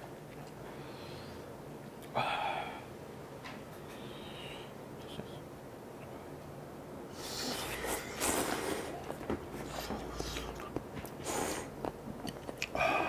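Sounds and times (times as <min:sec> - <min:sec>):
people slurping noodles: 0:07.2 - 0:11.7
chewing: 0:07.6 - 0:12.8.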